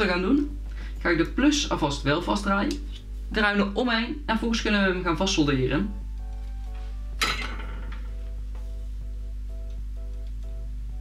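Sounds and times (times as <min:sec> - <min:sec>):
plucked-note background music: 0:00.0 - 0:11.0.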